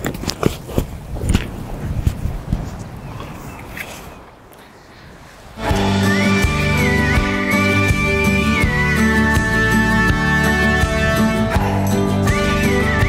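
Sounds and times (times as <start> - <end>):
loud music with held melody: 5.6 - 13.0.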